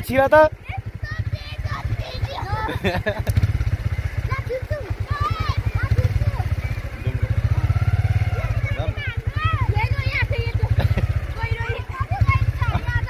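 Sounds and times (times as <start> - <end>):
people calling out: 0.0 - 3.2, 3.8 - 13.0.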